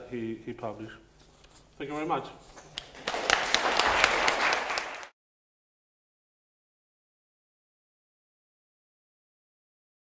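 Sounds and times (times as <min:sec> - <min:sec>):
audience applauding: 0:02.8 - 0:05.2.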